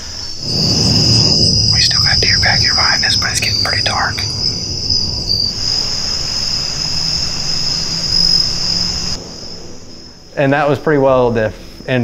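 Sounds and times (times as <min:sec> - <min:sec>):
crickets trilling: 0:00.0 - 0:12.0
low rumble: 0:00.4 - 0:11.0.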